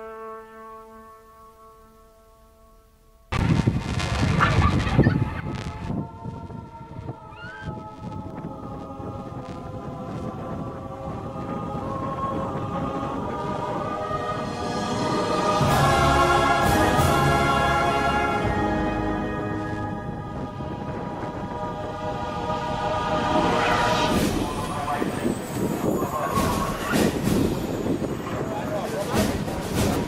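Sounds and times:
choir singing sustained chords: 0.0s - 2.9s, 5.6s - 29.8s
wind buffeting microphone: 3.4s - 15.6s, 19.6s - 30.0s.

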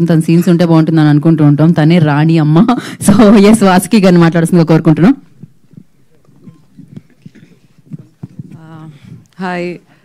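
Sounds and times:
microphone handling knocks: 5.2s - 9.3s.

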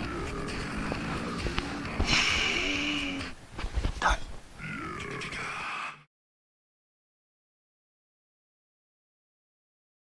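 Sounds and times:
man grunting: 1.9s - 3.3s, 4.0s - 6.0s.

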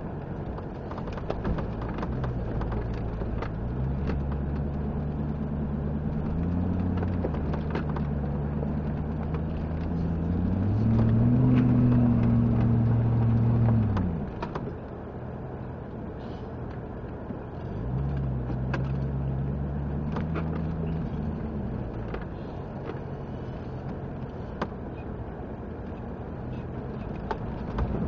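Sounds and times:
sharp knocks and rattles: 0.5s - 14.8s
off-road vehicle engine revving: 2.0s - 14.4s, 17.6s - 24.4s.

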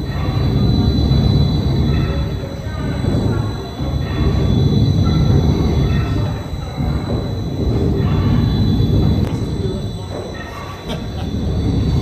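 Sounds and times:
faint high whine: 0.0s - 12.0s
steam engine rumble and clatter: 0.0s - 12.0s.

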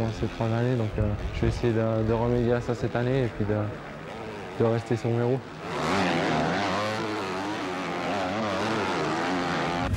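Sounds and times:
motocross bike engines revving: 0.0s - 9.9s.

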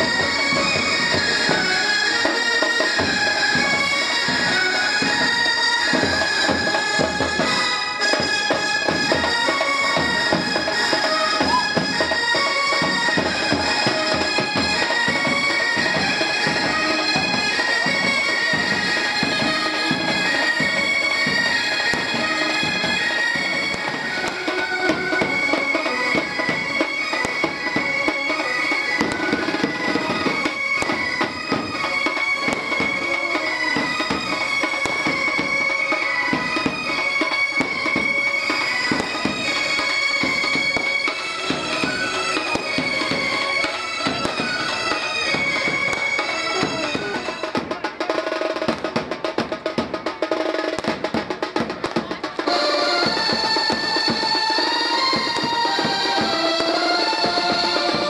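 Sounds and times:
brass band melody: 0.0s - 58.0s
steady drumming: 0.0s - 58.0s.

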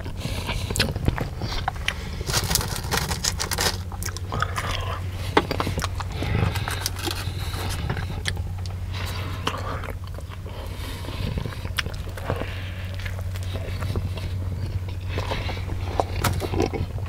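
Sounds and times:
chewing with wet mouth sounds: 0.0s - 17.0s
steady low hum: 0.0s - 17.0s.

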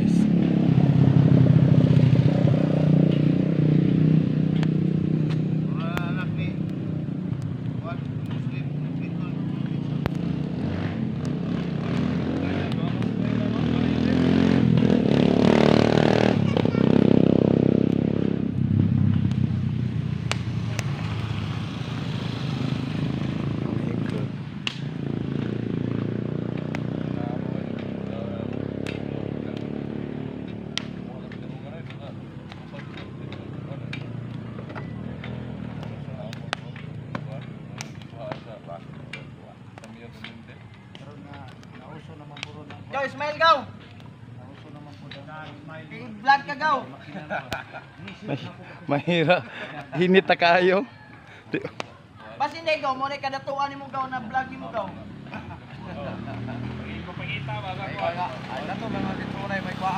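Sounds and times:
vehicle passing by: 0.0s - 59.9s
people's voices in background: 26.5s - 59.9s.

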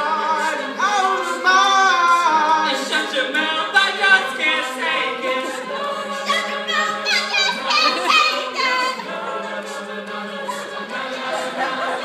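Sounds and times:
a cappella group singing in harmony: 0.0s - 12.0s.

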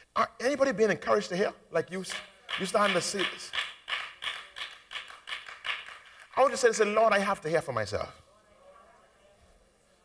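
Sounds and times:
sharp percussive taps: 2.0s - 6.7s.

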